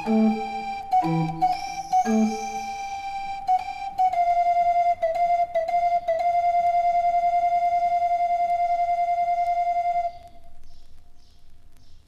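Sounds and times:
barrel organ flute-like pipe note: 0.0 - 4.1.

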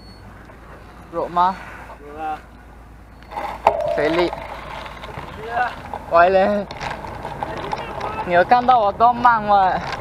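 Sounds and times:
bicycle road noise: 0.0 - 10.0
person speaking: 3.9 - 4.4.

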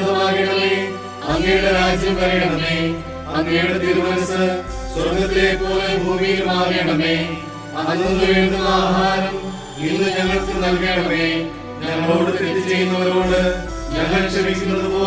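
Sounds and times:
slow chant-like singing: 0.0 - 15.0
sustained instrumental accompaniment: 0.0 - 15.0.

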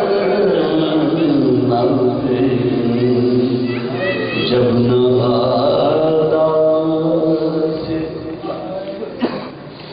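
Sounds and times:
men chanting: 0.0 - 8.7.

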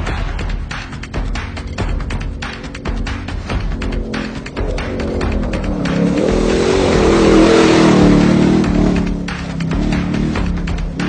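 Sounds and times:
music: 0.0 - 11.0
off-road vehicle engine revving: 0.3 - 11.0.

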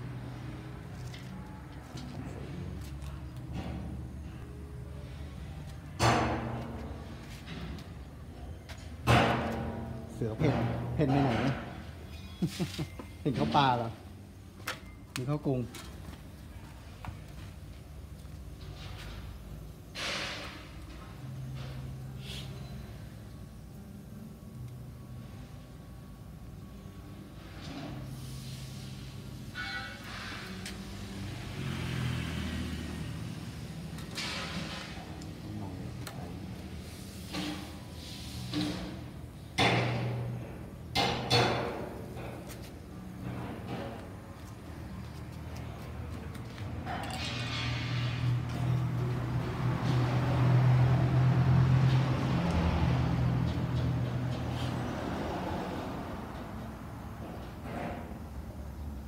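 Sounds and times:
vehicle engine humming: 48.0 - 59.0.

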